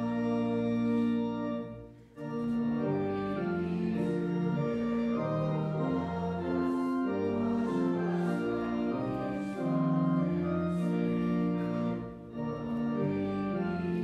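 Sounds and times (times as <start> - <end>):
church organ playing hymn: 0.0 - 14.0.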